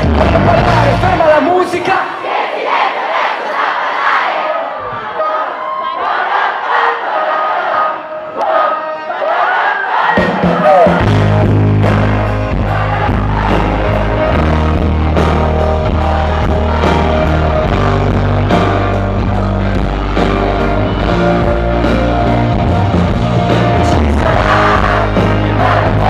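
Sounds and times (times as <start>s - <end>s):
bass and drums: 0.0s - 1.5s, 10.2s - 26.0s
crowd cheering and singing: 0.0s - 26.0s.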